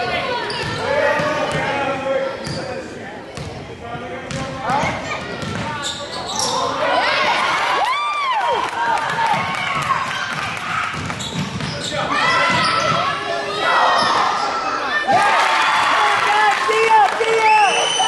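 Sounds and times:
sneakers squeaking on hardwood: 0.4 - 1.7, 4.3 - 6.7, 10.9 - 13.2.

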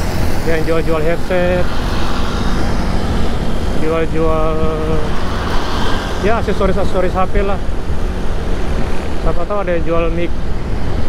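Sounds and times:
motorcycle engine rumble: 0.0 - 11.0
wind on microphone: 0.0 - 11.0.

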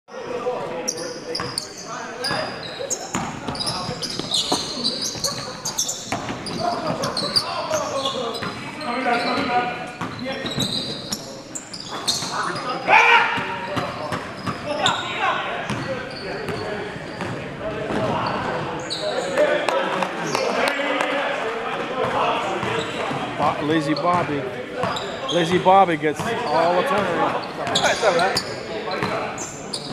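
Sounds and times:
sneakers squeaking: 0.2 - 20.8, 22.0 - 29.9
players calling out: 0.6 - 29.9.

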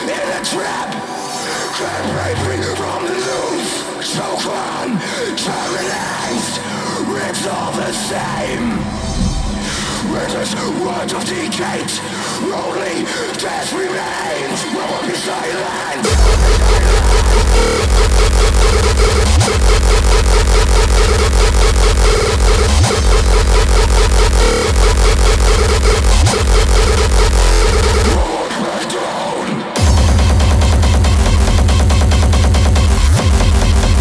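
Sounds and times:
hardcore techno music: 0.0 - 34.0
heavy distorted kick drum: 16.1 - 28.3, 29.8 - 34.0.

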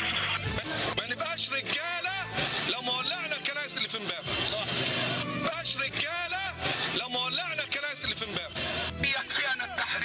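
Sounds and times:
background music: 0.0 - 10.0
person's voice: 0.6 - 10.0.

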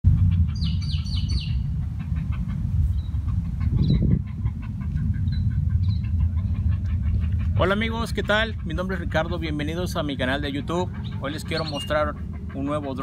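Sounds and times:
wind noise on microphone: 0.0 - 13.0
bird chirping: 0.2 - 13.0.

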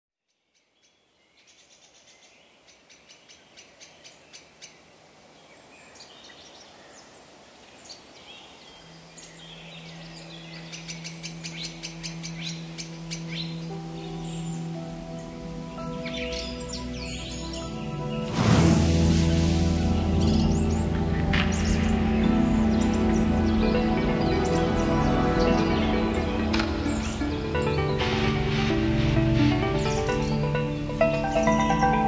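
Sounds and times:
birdsong with chirping trills: 0.2 - 32.0
low synth drone: 10.3 - 32.0.

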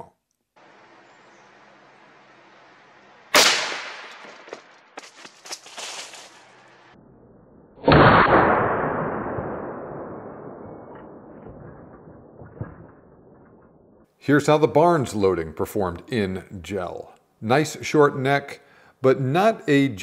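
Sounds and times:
rifle shot: 3.3 - 4.5, 7.8 - 13.8
slowed deep boom: 6.9 - 14.1.

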